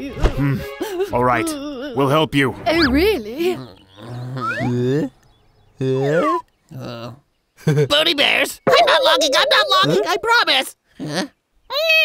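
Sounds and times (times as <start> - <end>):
cartoon character drawn-out vocal: 8.7 - 10.3.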